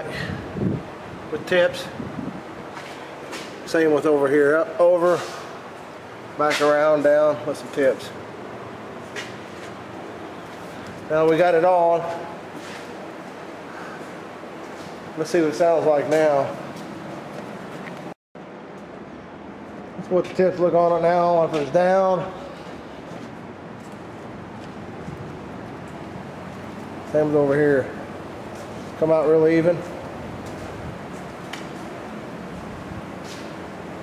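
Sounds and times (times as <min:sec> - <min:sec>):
steady background noise: 0:00.0 - 0:34.0.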